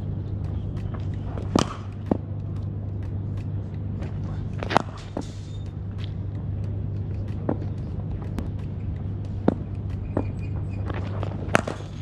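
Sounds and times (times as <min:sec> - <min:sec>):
low hum: 0:00.0 - 0:12.0
footsteps and scuffs: 0:00.1 - 0:12.0
bat striking ball: 0:00.3 - 0:12.0.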